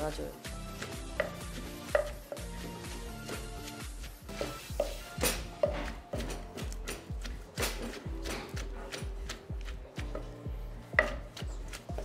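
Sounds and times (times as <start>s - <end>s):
pestle pounding in clay mortar: 0.0s - 12.0s
soft background music: 0.0s - 12.0s.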